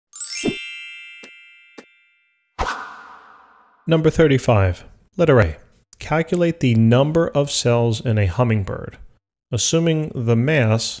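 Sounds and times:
bright ringing chime: 0.1 - 2.6.

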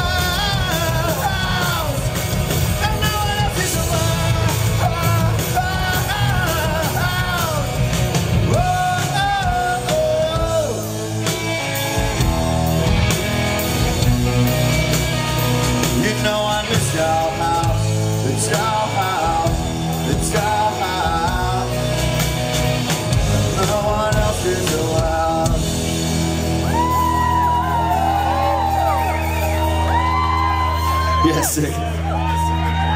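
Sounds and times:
man singing: 0.0 - 11.3, 15.8 - 22.2, 23.1 - 26.0
distorted electric guitar: 0.0 - 32.9
drum kit: 0.0 - 32.9.

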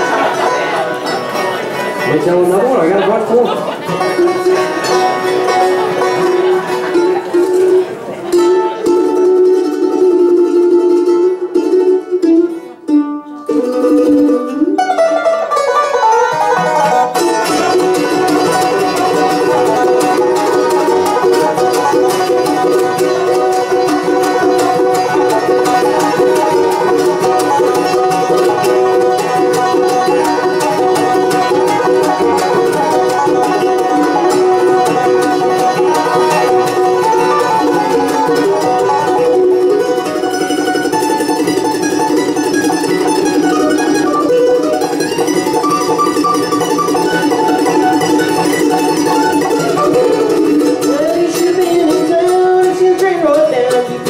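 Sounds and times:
acoustic guitar: 0.0 - 54.0
banjo: 0.0 - 54.0
mandolin: 0.0 - 54.0.

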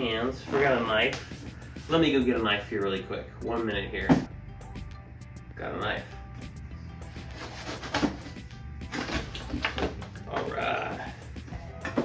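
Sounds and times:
background music: 0.0 - 12.0
cardboard rustling: 7.2 - 10.5.

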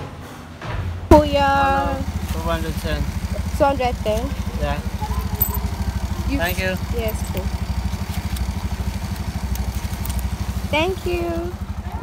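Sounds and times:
small motorcycle engine idling: 1.2 - 12.0.

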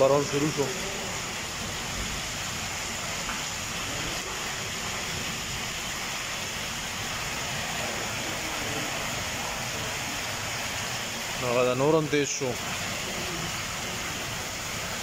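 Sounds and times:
rain on paving: 0.0 - 15.0.

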